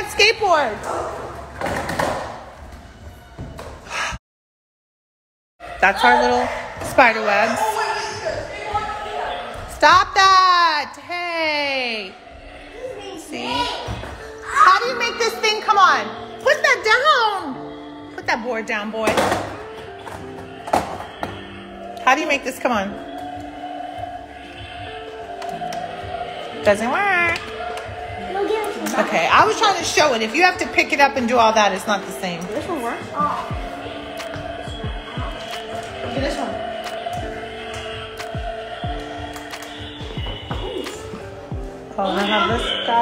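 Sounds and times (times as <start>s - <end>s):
background music: 0.0s - 4.2s, 5.6s - 43.0s
skateboard hitting tiled floor: 1.0s - 2.6s, 19.0s - 21.4s.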